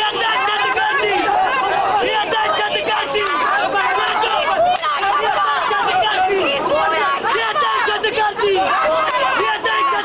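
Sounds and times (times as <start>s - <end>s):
crowd talking loudly: 0.0s - 10.0s.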